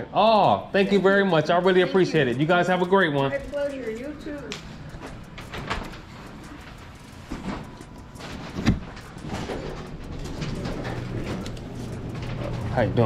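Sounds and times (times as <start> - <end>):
elevator doors sliding open: 7.2 - 13.0.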